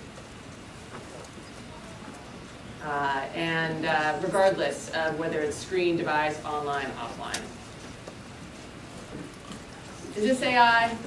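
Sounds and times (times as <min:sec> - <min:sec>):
woman speaking: 0:02.8 - 0:07.6, 0:10.1 - 0:11.0.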